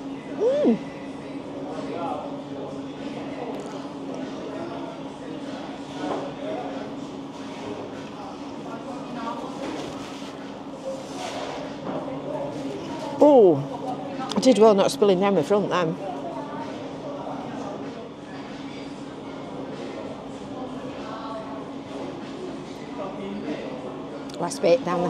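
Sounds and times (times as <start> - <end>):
background chatter: 0.0 - 25.0.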